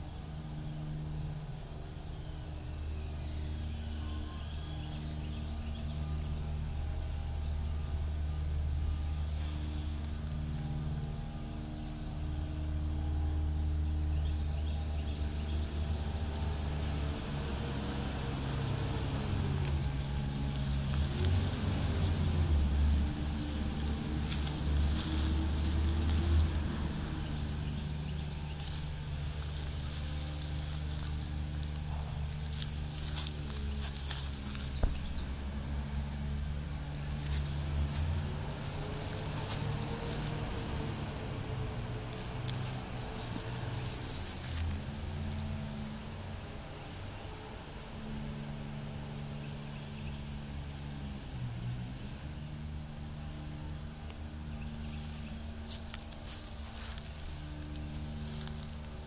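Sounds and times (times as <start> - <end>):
engine humming: 0.0 - 59.0.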